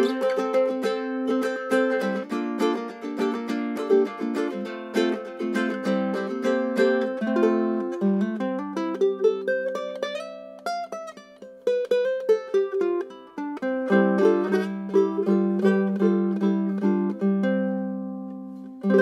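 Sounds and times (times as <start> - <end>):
plucked ukulele: 0.0 - 19.0.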